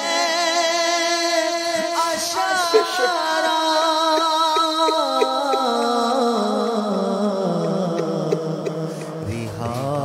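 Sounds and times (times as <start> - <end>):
wordless chanting voice: 0.0 - 10.0.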